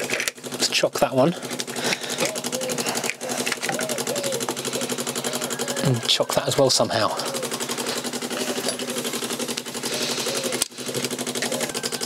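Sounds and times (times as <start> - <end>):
electric fuel pump ticking: 0.0 - 12.0.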